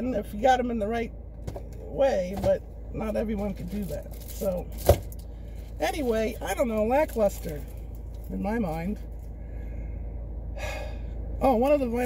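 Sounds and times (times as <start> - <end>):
low rumble inside car: 0.0 - 12.0.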